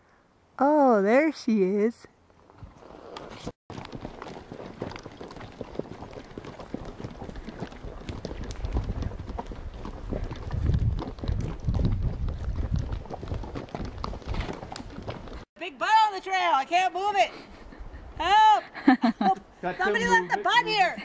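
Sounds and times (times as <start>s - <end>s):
horse hooves clip-clopping on dirt: 2.3s - 17.0s.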